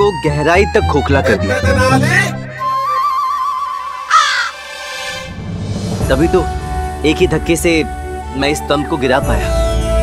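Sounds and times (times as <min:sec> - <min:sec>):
crow cawing: 0:04.1 - 0:04.7.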